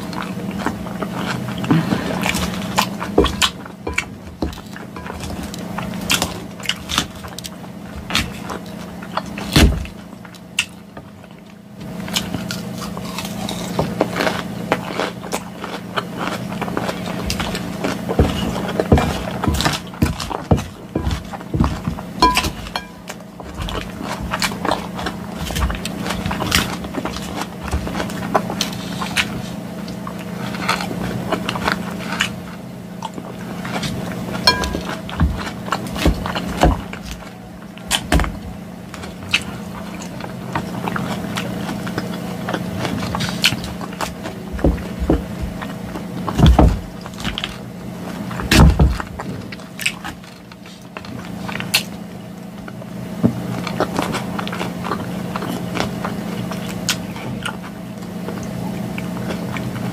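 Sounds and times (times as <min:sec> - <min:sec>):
lettuce crunched and chewed: 0:00.0 - 0:59.9
steady low hum: 0:00.0 - 0:59.9.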